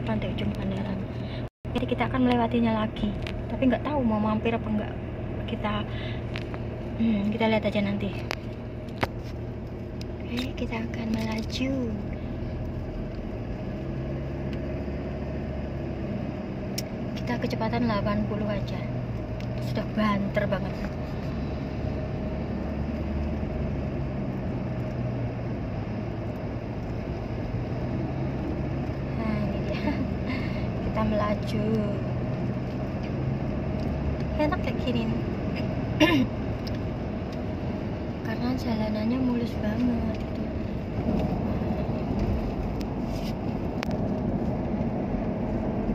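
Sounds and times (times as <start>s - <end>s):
car road and engine drone: 0.0s - 45.9s.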